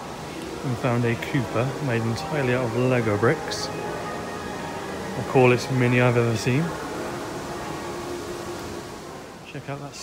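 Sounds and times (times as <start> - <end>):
faint steady hum: 0.0 - 10.0
room noise hiss: 0.0 - 10.0.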